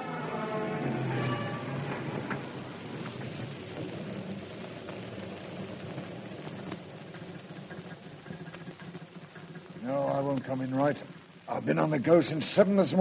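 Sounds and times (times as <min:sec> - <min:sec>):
old recording hiss: 0:00.0 - 0:13.0.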